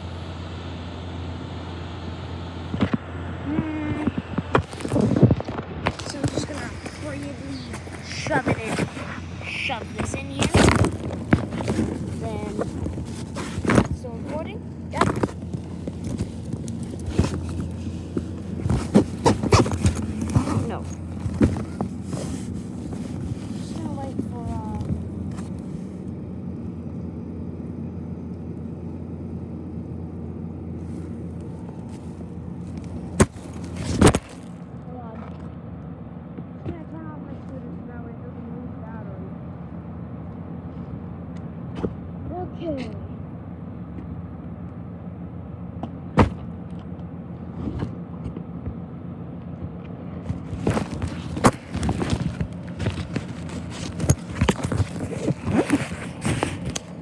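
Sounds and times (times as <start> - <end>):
steady low hum: 0.0 - 57.0
fabric rubbing on microphone: 4.7 - 14.5, 16.2 - 25.8, 50.3 - 57.0.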